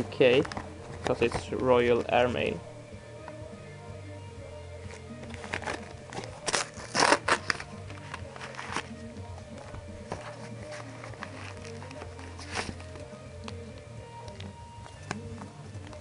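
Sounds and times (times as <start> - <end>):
background music: 0.0 - 16.0
paper envelope rustling and tearing: 5.2 - 9.0, 9.6 - 13.1.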